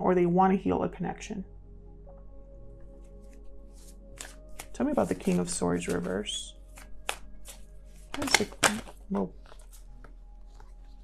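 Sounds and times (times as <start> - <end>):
quiet background music: 0.0 - 11.0
cards being shuffled: 3.2 - 11.0
papery card snaps: 4.2 - 10.7.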